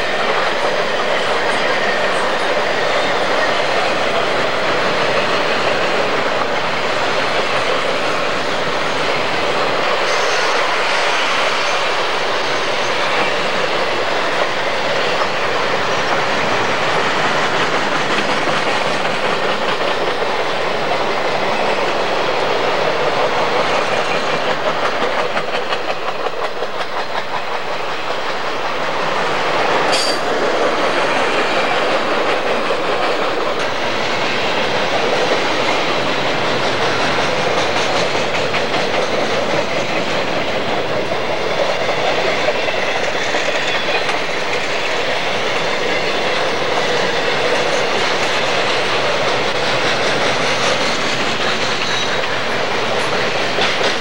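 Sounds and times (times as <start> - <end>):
freight train cars rolling past: 0.0 - 54.0
wheels clicking over rail joints: 11.8 - 54.0.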